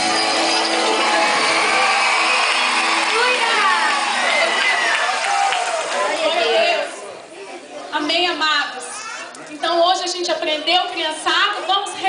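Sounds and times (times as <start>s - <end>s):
song music: 0.0s - 6.2s
many voices chattering: 0.0s - 12.0s.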